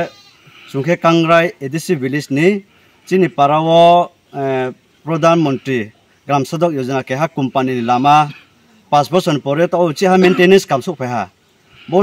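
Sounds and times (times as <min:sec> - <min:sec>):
man speaking: 0:00.7 - 0:12.0.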